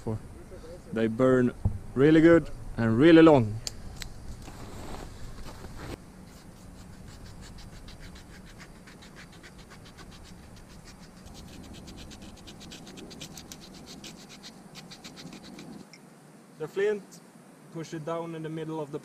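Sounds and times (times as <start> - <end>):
knife scraping bark: 3.8 - 15.9.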